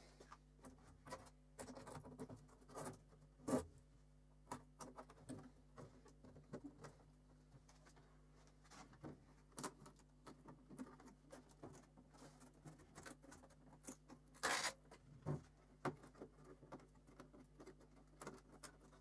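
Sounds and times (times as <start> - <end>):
plastic cover clicks and scratches: 9.4 - 19.0.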